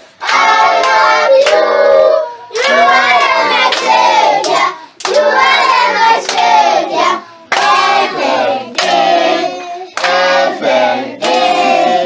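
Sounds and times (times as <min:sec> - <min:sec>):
children singing: 0:00.2 - 0:12.0.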